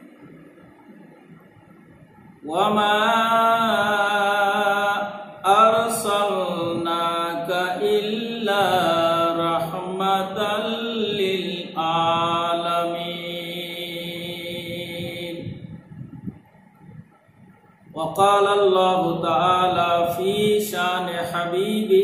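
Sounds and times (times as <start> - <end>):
man chanting melodically: 2.4 - 15.9, 17.9 - 22.0.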